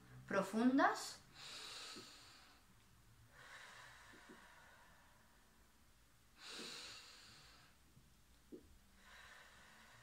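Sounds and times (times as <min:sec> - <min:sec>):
woman breathing through nose: 0:01.3 - 0:02.7, 0:03.3 - 0:05.5, 0:06.4 - 0:07.8, 0:08.9 - 0:10.0.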